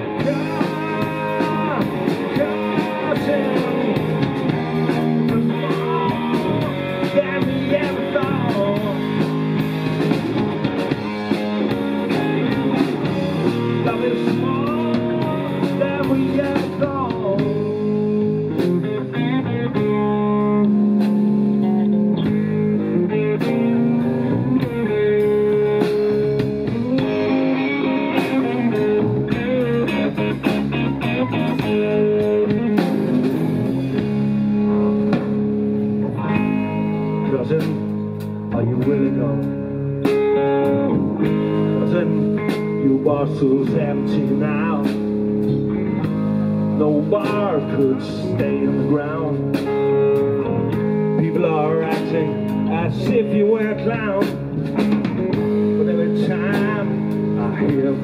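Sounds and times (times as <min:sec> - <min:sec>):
bass guitar: 0:00.0 - 0:58.0
drum kit: 0:00.0 - 0:58.0
electric guitar bent notes: 0:00.0 - 0:58.0.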